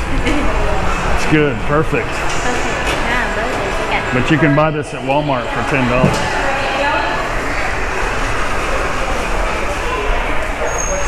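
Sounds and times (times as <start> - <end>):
shoppers' voices: 0.0 - 11.0.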